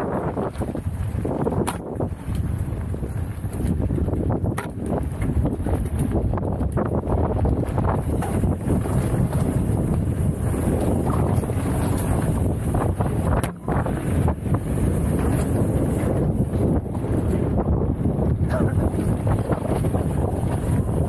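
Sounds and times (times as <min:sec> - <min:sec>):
bike frame rattling: 0:00.0 - 0:21.0
bike tyres rumbling on dirt: 0:00.0 - 0:21.0
wind buffeting microphone: 0:00.0 - 0:21.0.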